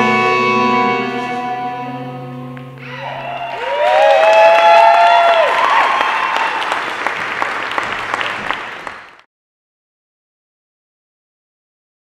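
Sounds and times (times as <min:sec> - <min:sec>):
voices whooping: 0:02.8 - 0:06.8
audience applauding: 0:02.8 - 0:09.3.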